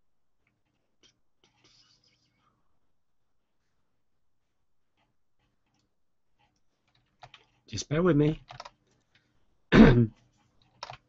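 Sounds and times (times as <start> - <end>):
computer keyboard clicks: 6.8 - 7.6, 8.4 - 9.1, 10.6 - 11.0
man speaking: 7.7 - 8.5.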